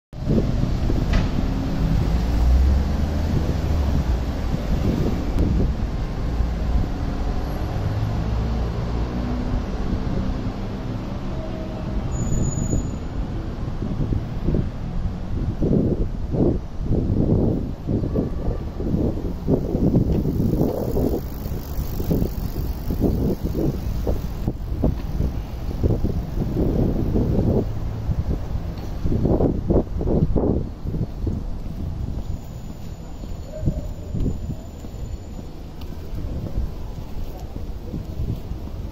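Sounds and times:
passing cars rumble: 0.2s - 38.9s.

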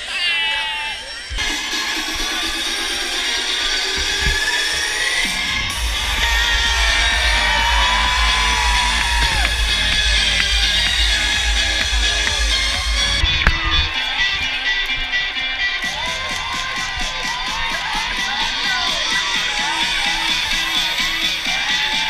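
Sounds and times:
crowd noise: 0.0s - 22.0s
live concert music: 0.0s - 22.0s
heavy bass beat: 1.4s - 22.0s.

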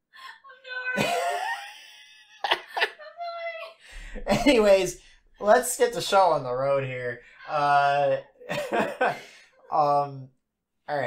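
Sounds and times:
man laughing: 1.0s - 3.1s, 4.2s - 4.8s, 7.5s - 10.1s.

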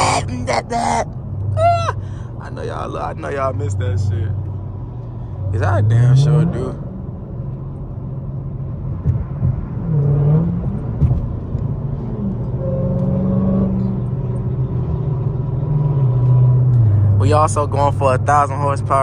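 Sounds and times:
car engine drone: 0.0s - 19.0s.

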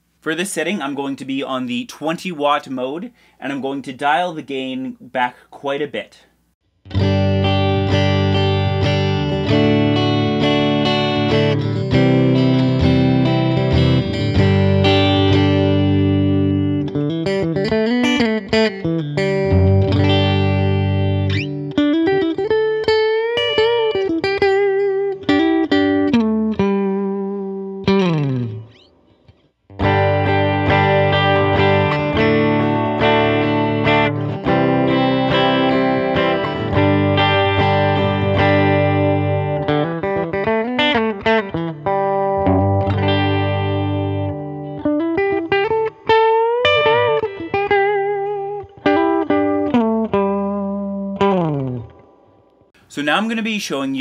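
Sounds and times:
clean electric guitar: 6.8s - 52.9s.

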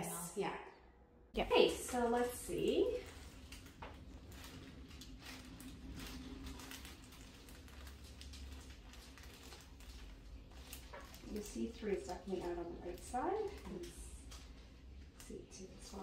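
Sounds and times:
low steady hum: 0.0s - 16.0s
soft rustles: 1.5s - 16.0s.

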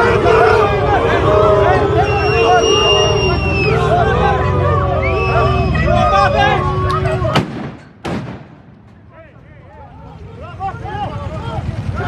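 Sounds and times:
crowd shouting: 0.0s - 7.6s, 8.5s - 12.0s
faint voices: 0.0s - 7.8s, 8.7s - 12.0s
loud bangs: 7.3s - 9.5s.

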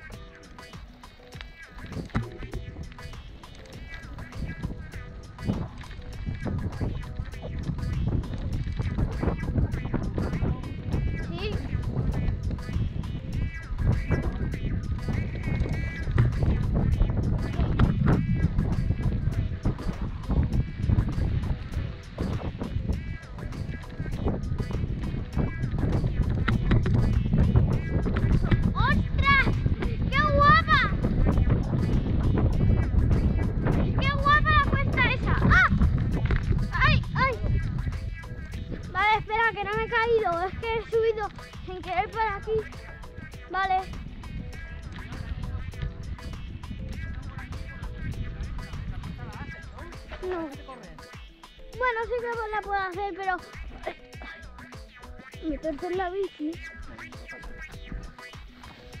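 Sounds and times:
wind rumble on camera: 1.8s - 50.6s.

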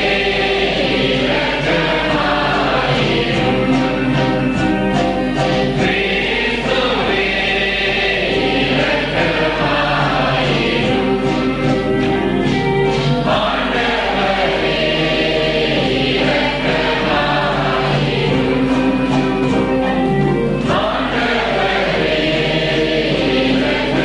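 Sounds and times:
choir singing a hymn: 0.0s - 24.0s.

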